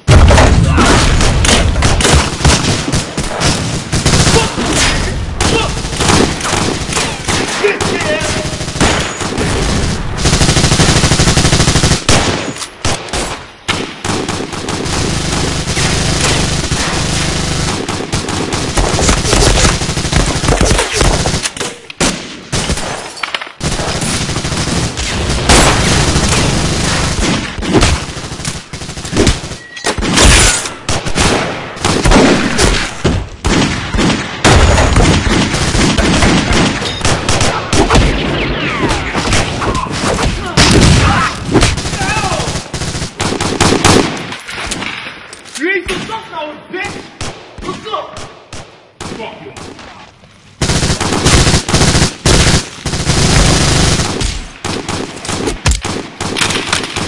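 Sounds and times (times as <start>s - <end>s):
rapid gunfire from automatic rifles: 0.0s - 45.0s, 48.2s - 49.9s, 50.5s - 57.0s.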